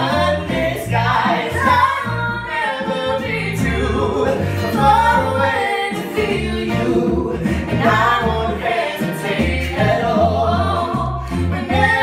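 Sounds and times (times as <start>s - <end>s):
man and woman singing duet: 0.0s - 12.0s
sustained bass notes: 0.0s - 12.0s.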